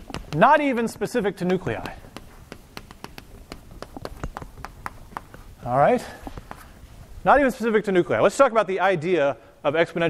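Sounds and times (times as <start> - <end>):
chalk tapping on a blackboard: 0.0 - 6.8.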